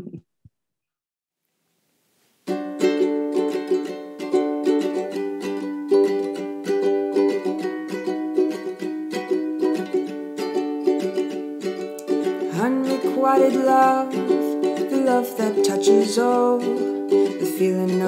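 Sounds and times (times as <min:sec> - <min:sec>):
ukulele strumming chords: 0:02.4 - 0:18.0.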